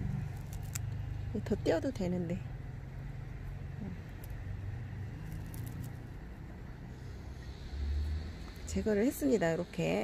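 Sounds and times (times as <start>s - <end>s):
dry roots crackling: 0.0s - 6.9s.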